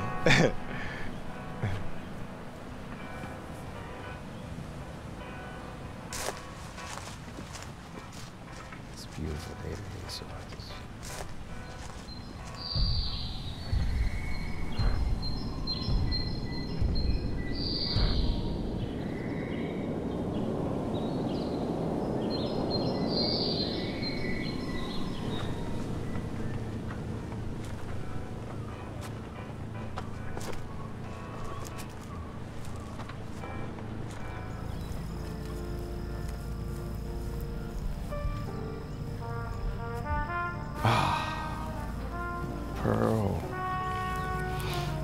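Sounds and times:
birds chirping: 0.0s - 45.0s
soft background music: 0.0s - 45.0s.

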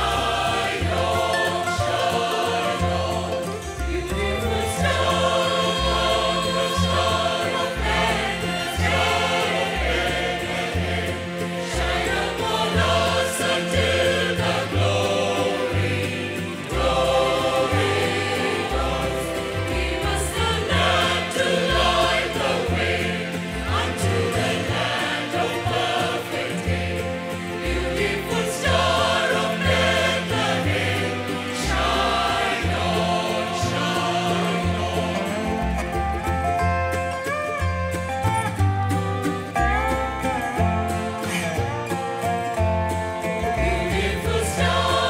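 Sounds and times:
mixed choir singing a carol: 0.0s - 36.4s, 40.7s - 45.0s.

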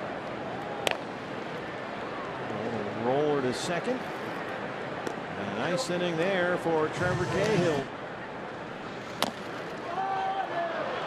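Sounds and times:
stadium crowd murmur: 0.0s - 11.0s.

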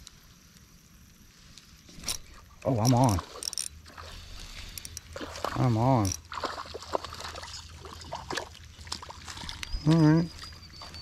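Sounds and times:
fishing reel clicking: 2.8s - 3.8s, 6.0s - 6.2s.

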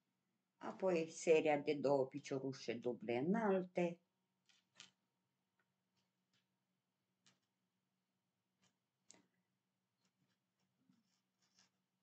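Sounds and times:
crochet hook scratching yarn: 10.0s - 12.0s.

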